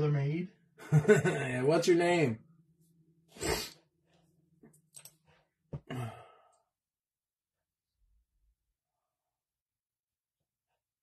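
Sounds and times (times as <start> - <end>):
person sighing: 5.8 - 6.7.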